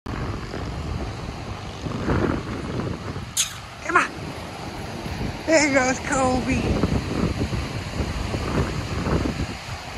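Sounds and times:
ocean surf: 0.1s - 9.9s
wind buffeting microphone: 0.1s - 9.9s.

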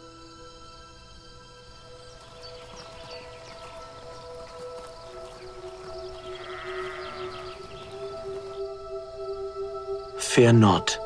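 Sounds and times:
background music of long held notes: 0.0s - 11.0s.

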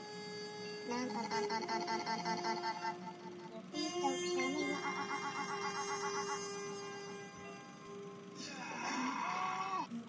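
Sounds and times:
steady held tone: 0.0s - 9.2s
synthetic voice wailing: 0.9s - 6.5s, 8.4s - 9.9s.

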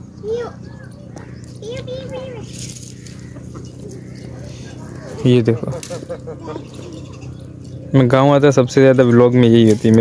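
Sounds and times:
chickens scratching and pecking: 1.2s - 7.9s, 9.0s - 10.0s.

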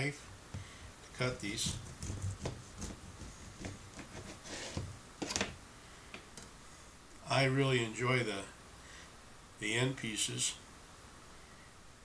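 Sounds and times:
serrated knife sawing bread: 1.2s - 4.8s.

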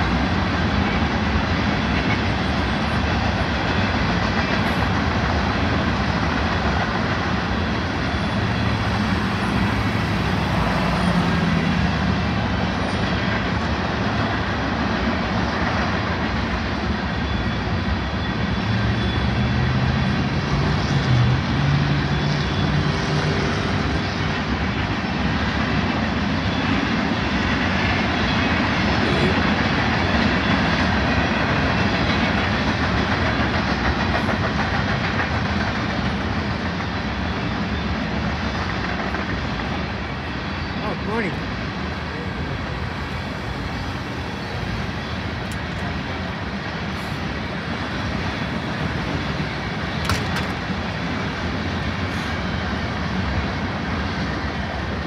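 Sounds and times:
freight train rumbling on rails: 0.0s - 55.0s.

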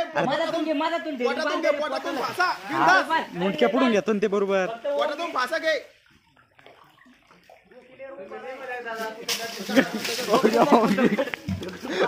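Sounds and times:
water sloshing in a well: 4.8s - 12.0s.

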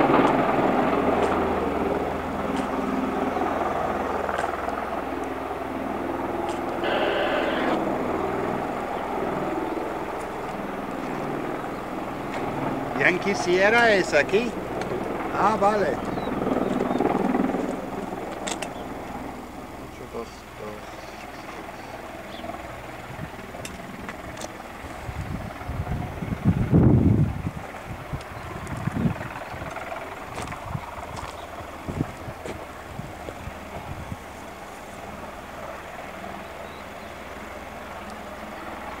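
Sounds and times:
aircraft rotors droning: 0.0s - 39.0s.

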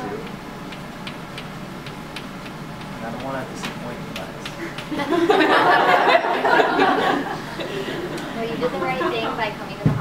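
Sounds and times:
room background noise: 0.0s - 10.0s.

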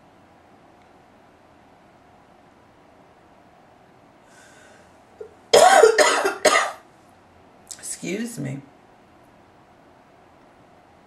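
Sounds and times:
woman coughing: 5.6s - 6.8s.

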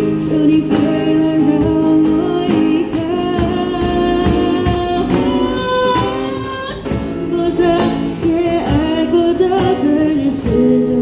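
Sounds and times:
cajon beat: 0.0s - 11.0s
strummed acoustic guitars: 0.0s - 11.0s
woman singing into microphone: 0.0s - 11.0s.

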